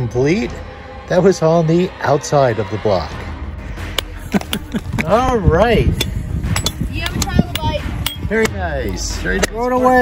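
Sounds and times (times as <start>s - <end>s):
hammers striking rock: 6.0s - 8.6s.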